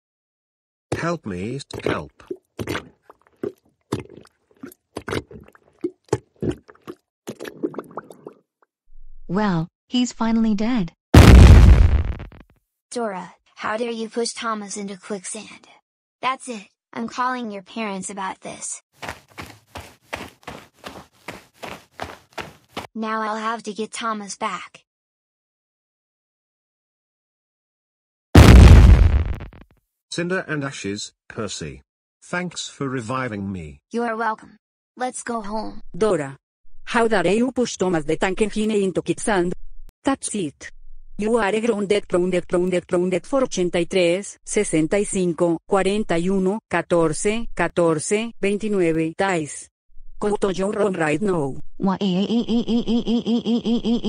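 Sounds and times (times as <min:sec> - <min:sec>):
cartoon gurgles and pops: 0:00.9 - 0:08.4
loud explosion sound effect: 0:11.2 - 0:12.4, 0:28.4 - 0:29.6.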